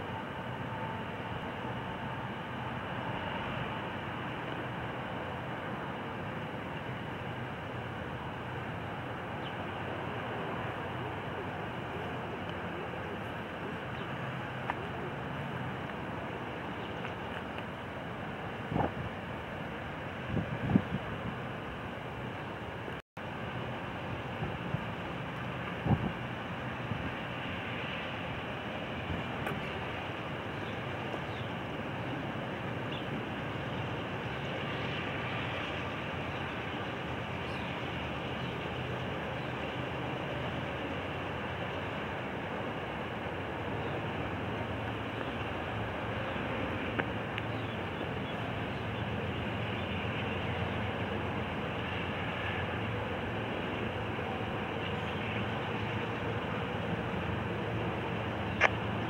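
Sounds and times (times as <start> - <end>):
diesel locomotive rumble: 0.0 - 59.0
wind noise: 15.3 - 22.9, 24.0 - 59.0.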